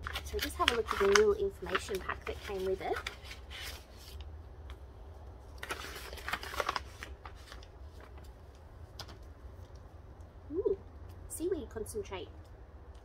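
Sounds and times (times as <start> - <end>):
paper rustling and crinkling: 0.0 - 4.2, 5.4 - 9.3
steady low hum: 0.0 - 13.0.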